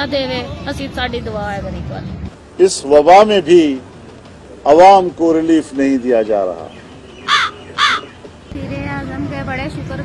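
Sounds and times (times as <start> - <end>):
crow cawing: 7.2 - 8.2.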